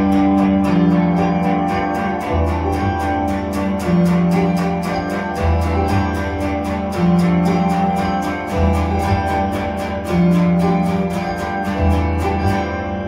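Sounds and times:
electric guitar picking: 0.0 - 13.0
keyboard chords: 0.0 - 13.0
low bass notes: 0.0 - 13.0.

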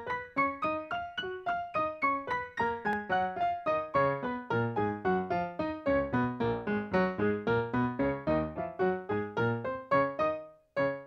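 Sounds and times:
piano playing fast scale: 0.0 - 11.0.

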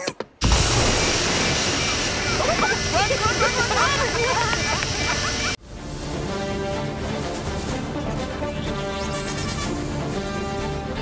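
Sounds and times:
smoke machine hissing: 0.4 - 5.6
quick squealing cries: 9.1 - 9.8.

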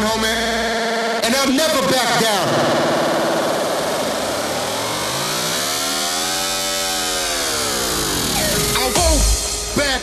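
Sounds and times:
electronic dance music: 0.0 - 10.0
buzzy synth tone gliding: 2.0 - 9.9.

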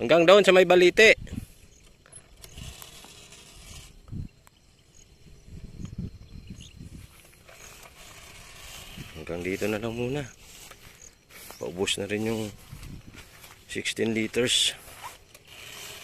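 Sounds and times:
sprayer pump creaking and clicking: 1.6 - 4.6, 5.8 - 16.0.

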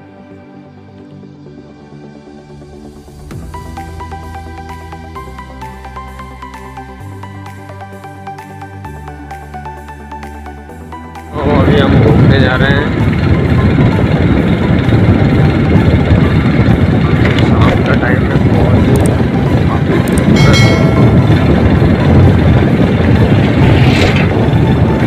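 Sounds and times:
wind buffeting microphone: 11.4 - 25.0
motorcycle engine rumble: 11.8 - 25.0.

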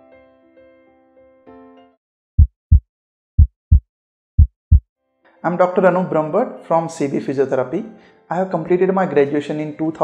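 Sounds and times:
heartbeat thumps: 2.4 - 2.8, 3.4 - 3.8, 4.4 - 4.8.

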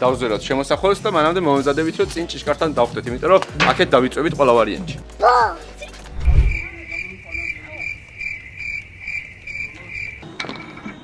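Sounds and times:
cricket chirping: 6.2 - 11.0.

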